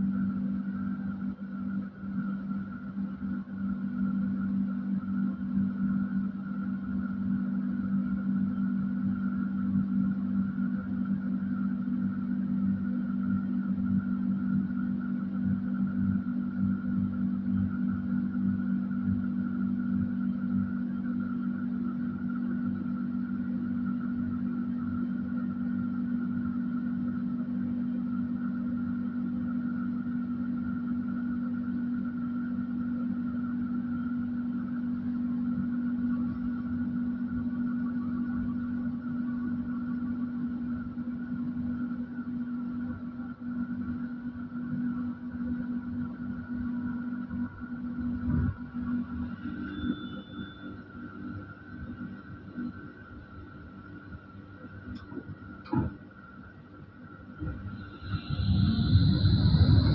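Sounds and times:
tram electrical hum: 0.0 - 59.9
brief high beep: 49.6 - 50.8.

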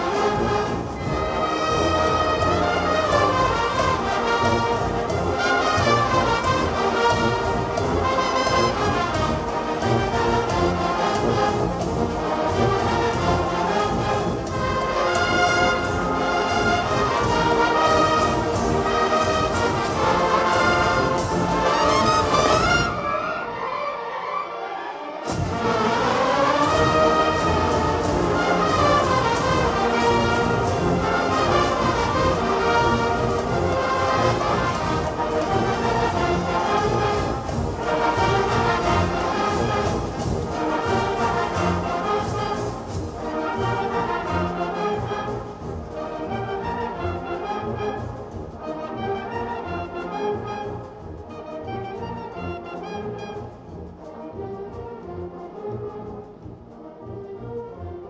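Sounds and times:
brass and woodwind band playing: 0.0 - 58.0.

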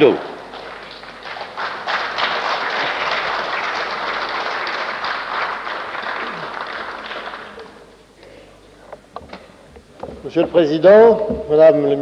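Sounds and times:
applause: 0.0 - 7.8.

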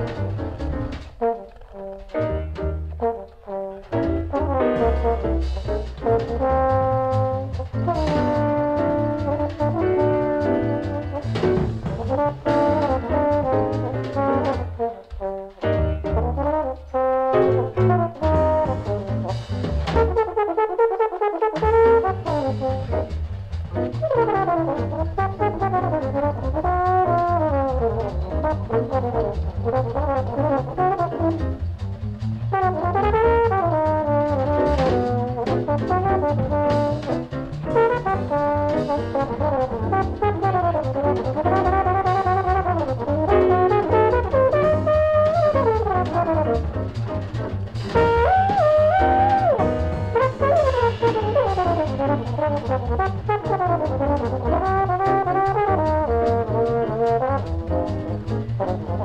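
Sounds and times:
walking bass: 0.0 - 20.5, 21.5 - 59.0
brass horn melody: 0.0 - 31.7, 32.4 - 59.0
drums with cymbal strokes: 49.6 - 52.9.

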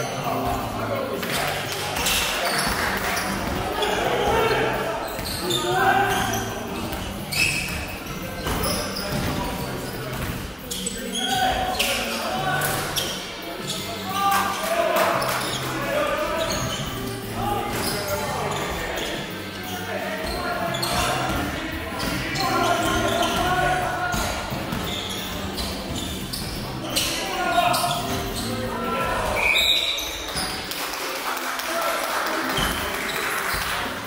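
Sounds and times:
players' voices: 0.0 - 34.0.

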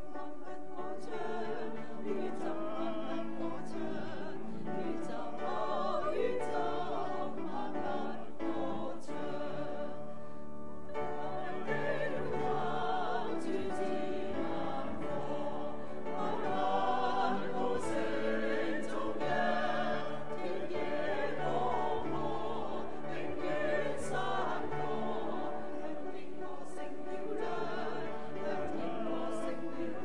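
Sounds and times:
choir singing: 0.0 - 30.0.

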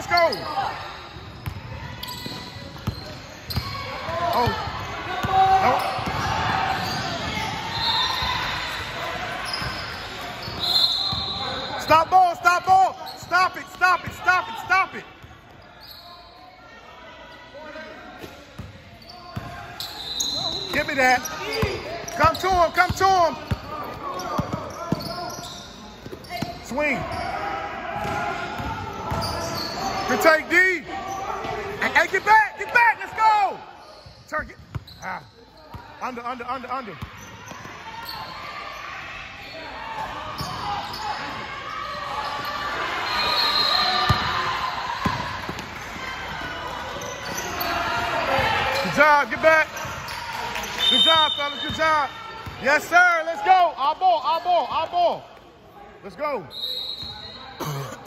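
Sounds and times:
sneaker squeaks: 0.0 - 14.3, 15.2 - 16.6, 18.1 - 32.5, 33.1 - 45.9, 46.8 - 52.9, 56.4 - 58.0.

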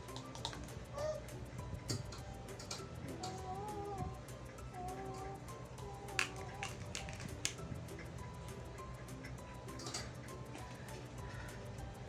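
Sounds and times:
background music: 0.0 - 12.0
sharp plastic clicks: 6.1 - 7.6.

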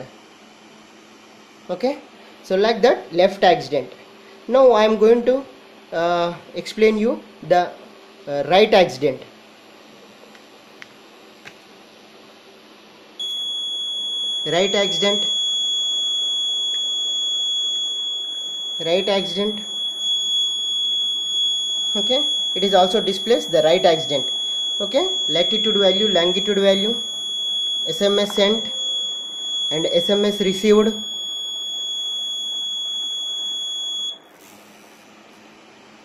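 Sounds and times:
piezo buzzer high-pitched tone: 13.2 - 36.0.

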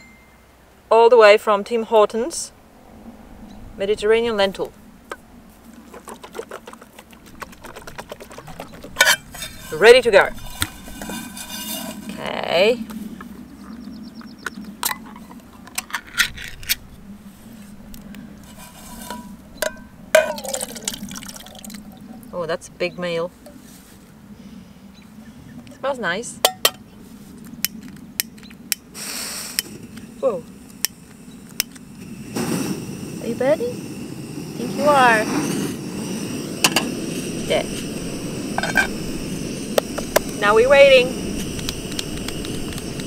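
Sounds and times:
gas stove burner rushing: 28.9 - 43.0.

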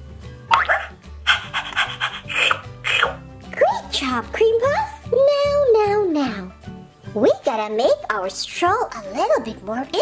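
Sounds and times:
light background music: 0.0 - 10.0
toy puppy barking: 0.6 - 3.2
toy puppy panting: 1.3 - 2.6.

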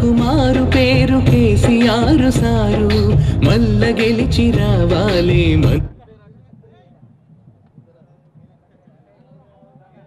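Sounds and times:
person singing: 0.0 - 5.9
fast steady drum beat: 0.0 - 10.0.

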